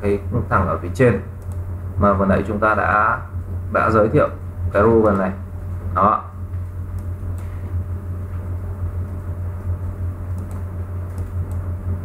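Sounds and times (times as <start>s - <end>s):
steady low hum: 0.0s - 12.0s
faint clicks: 1.4s - 1.6s, 10.3s - 11.6s.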